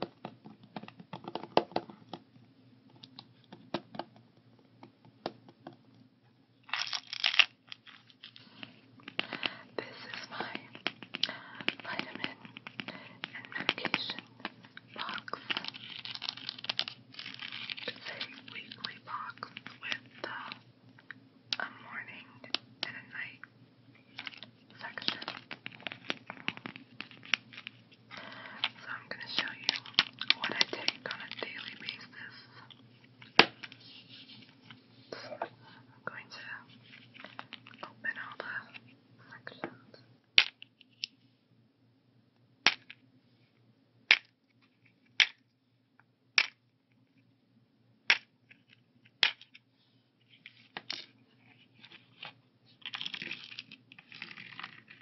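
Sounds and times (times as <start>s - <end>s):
plastic case handled and tapped: 0.0s - 2.2s
soft whispering: 8.3s - 15.8s, 17.7s - 20.7s, 21.5s - 25.6s, 28.1s - 33.0s, 33.8s - 40.1s.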